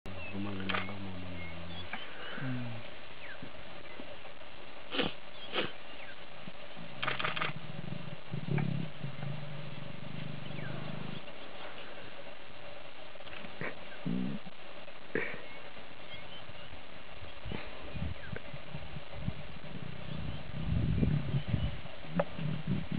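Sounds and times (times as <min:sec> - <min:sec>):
steady background hum: 0:00.1 - 0:22.9
lion growling moans: 0:00.3 - 0:02.9, 0:06.7 - 0:12.1, 0:18.6 - 0:22.9
sharp clicks: 0:00.6 - 0:00.9, 0:07.0 - 0:07.6.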